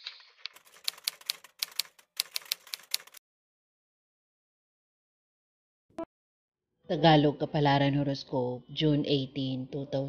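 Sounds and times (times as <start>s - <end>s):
typewriter keys clacking: 0.0s - 3.2s.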